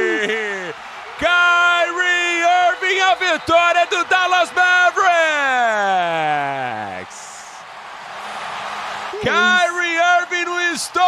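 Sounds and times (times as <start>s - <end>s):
man shouting: 0.0s - 6.9s, 9.2s - 11.0s
crowd cheering: 0.0s - 11.0s.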